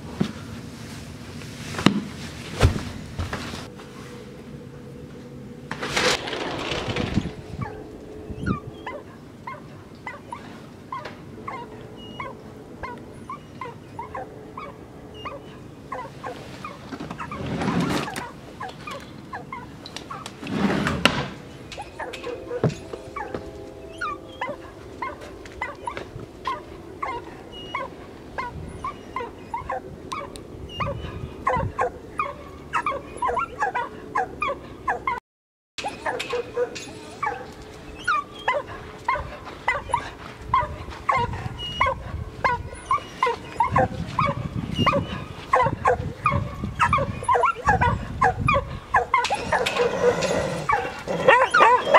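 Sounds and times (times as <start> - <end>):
dogs whimpering and yipping: 6.2 - 20.4, 21.6 - 35.2, 35.8 - 51.9.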